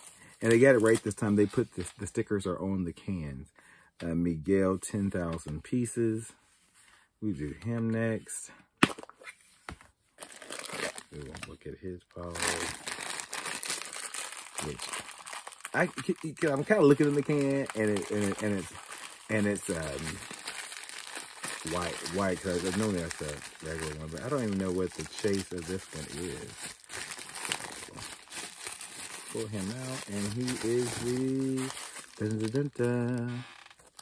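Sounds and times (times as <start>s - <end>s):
plastic wrapping crinkling: 0.0s - 1.6s, 12.2s - 34.0s.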